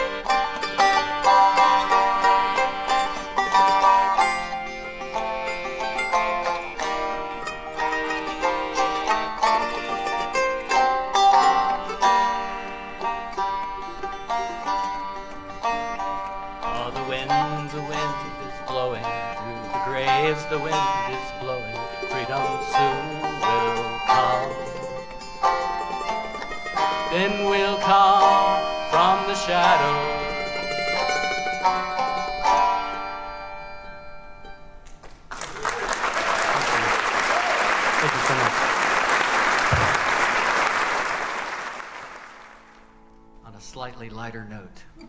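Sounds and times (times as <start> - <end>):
piano accordion: 0.0 - 34.8
plucked banjo: 0.0 - 34.8
mandolin: 0.0 - 35.9, 42.5 - 45.0.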